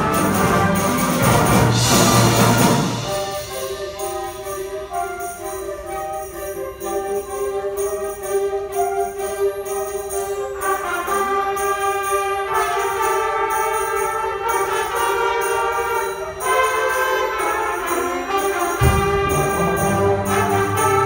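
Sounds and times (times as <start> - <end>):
concert band playing chords: 0.0 - 7.0, 17.4 - 21.0
high percussion beat: 0.0 - 8.8, 11.1 - 21.0.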